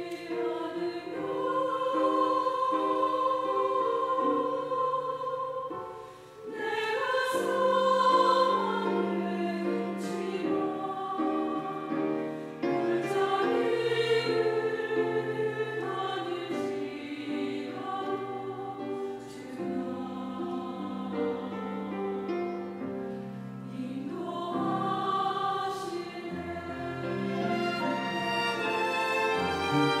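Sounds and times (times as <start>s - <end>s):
church choir singing a hymn: 0.0s - 30.0s
string ensemble: 0.0s - 30.0s.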